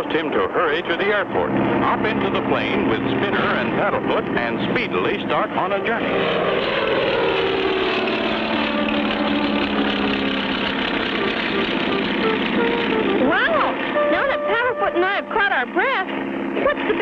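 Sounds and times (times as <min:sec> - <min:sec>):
cartoon propeller airplane drone: 0:00.0 - 0:17.0.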